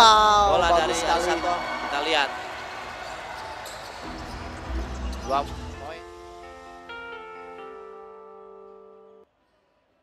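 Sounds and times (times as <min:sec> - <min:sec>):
crowd and court noise: 0:00.0 - 0:06.1.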